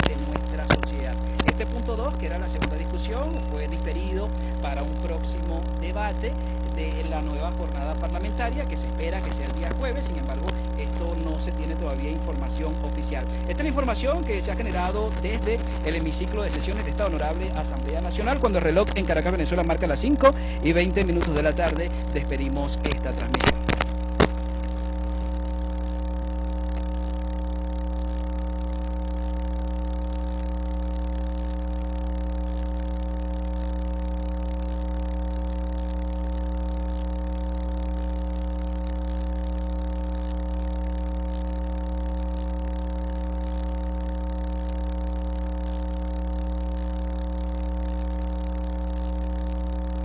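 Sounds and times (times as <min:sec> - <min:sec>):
electrical hum: 0:00.0 - 0:50.0.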